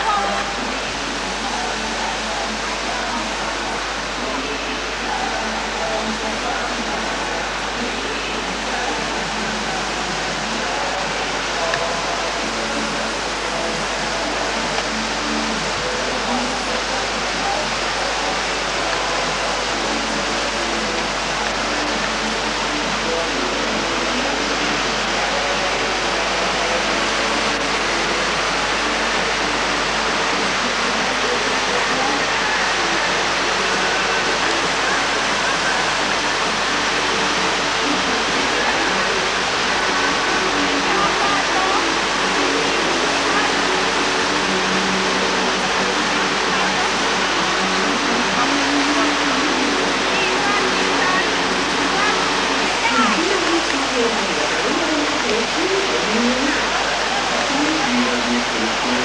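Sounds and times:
whitewater rushing over rocks: 0.0s - 59.0s.

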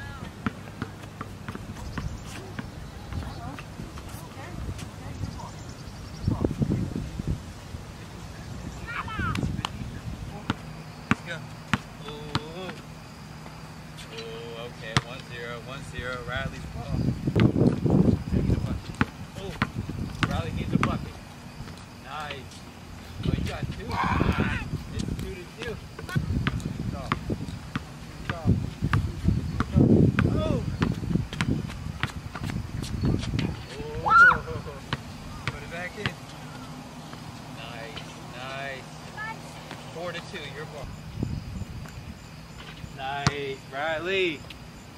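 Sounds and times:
basketball bouncing on hard court: 0.2s - 3.7s, 10.5s - 12.8s, 18.9s - 21.1s, 25.2s - 33.6s, 43.2s - 43.5s.

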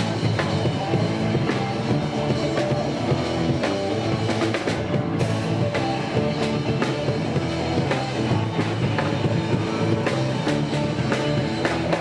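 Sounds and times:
drum kit: 0.0s - 12.0s
electric guitars: 0.0s - 12.0s.

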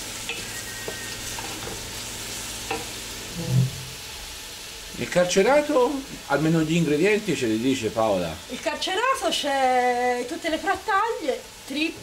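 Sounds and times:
food sizzling in a pot: 0.0s - 12.0s.

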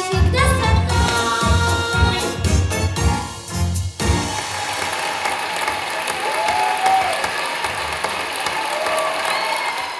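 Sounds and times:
audience applauding: 4.2s - 9.9s.

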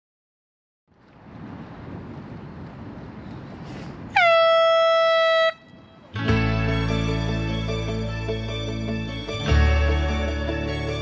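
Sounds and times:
outdoor background noise: 0.9s - 11.0s
air horn blast: 4.1s - 6.0s
music: 6.2s - 11.0s.

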